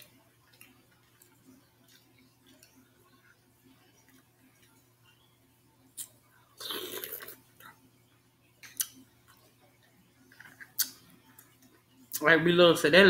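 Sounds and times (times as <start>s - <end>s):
eating by hand: 0.2s - 5.2s, 8.6s - 11.8s
slurp: 6.6s - 7.8s.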